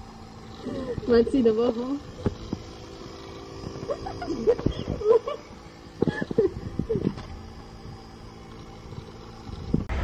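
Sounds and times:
electric air pump humming: 0.0s - 10.0s.

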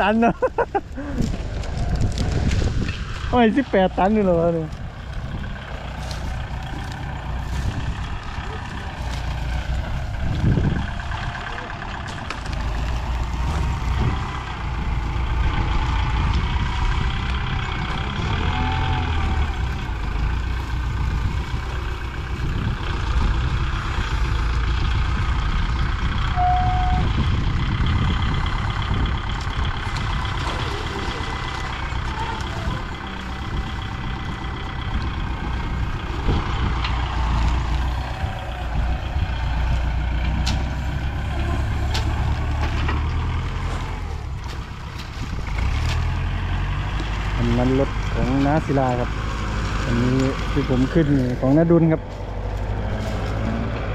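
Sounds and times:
diesel engines rumbling: 0.0s - 53.9s.

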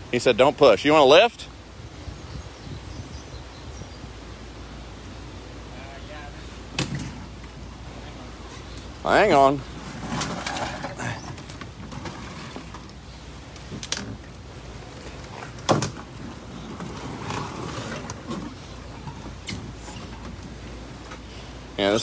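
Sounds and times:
canoe scraping through brush: 8.4s - 21.6s.

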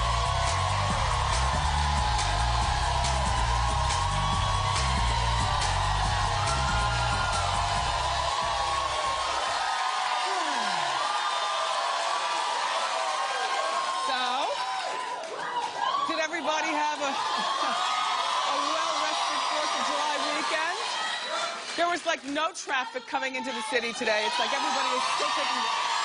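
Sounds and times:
upbeat theme music with bass beat: 0.0s - 9.4s
audience cheering and whooping: 0.0s - 21.8s, 22.9s - 26.0s.

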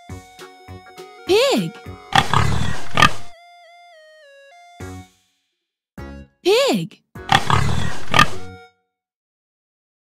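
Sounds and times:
background music: 0.0s - 8.8s
pig grunting loudly: 2.1s - 3.3s, 7.3s - 8.5s.

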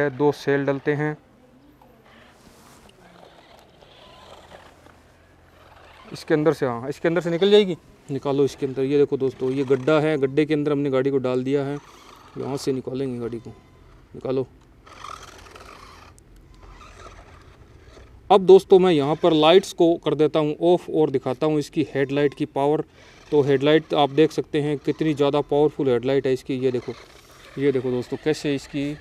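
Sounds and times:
toy truck electric motor whir: 0.0s - 1.2s, 2.1s - 29.0s.

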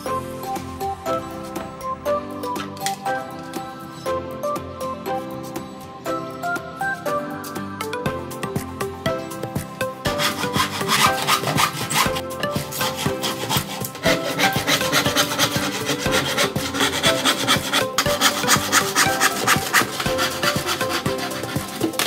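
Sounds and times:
handsaw cutting plywood: 10.1s - 22.0s.

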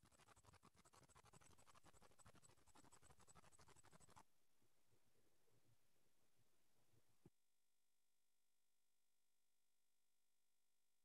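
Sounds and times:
faint scratchy crackle: 0.0s - 4.2s.

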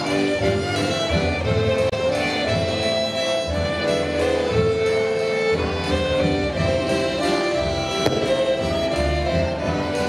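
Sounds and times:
accordion: 0.0s - 10.0s
double bass: 0.0s - 10.0s
fiddle: 0.0s - 10.0s
sharp crack: 8.0s - 9.1s
drum: 8.1s - 8.9s.

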